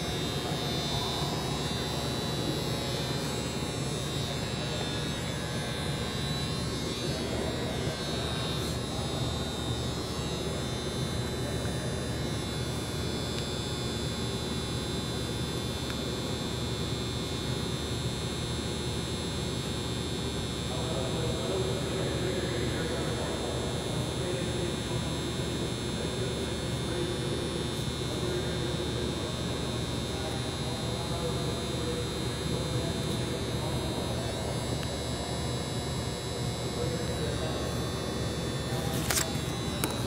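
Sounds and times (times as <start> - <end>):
faint thin whine: 0.0 - 14.4, 20.5 - 40.0
steady droning hum: 0.0 - 40.0.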